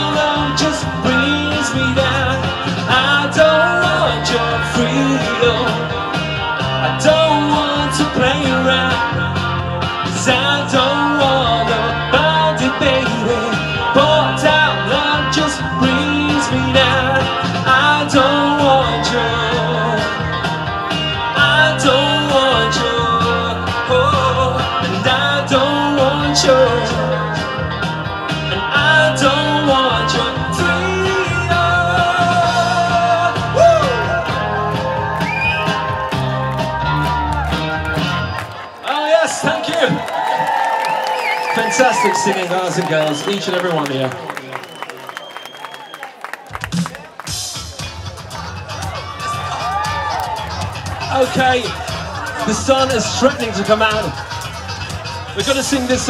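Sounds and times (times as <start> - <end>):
man singing into a microphone: 0.0 - 9.4, 10.0 - 20.5, 21.2 - 27.6, 28.4 - 34.6, 52.4 - 54.1
pop music with steady beat: 0.0 - 38.4, 46.5 - 56.0.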